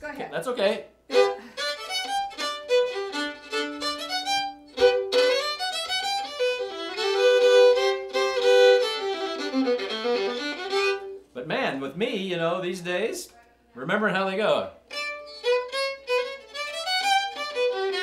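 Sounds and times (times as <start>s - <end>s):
solo fiddle playing: 1.1s - 11.3s, 14.9s - 18.0s.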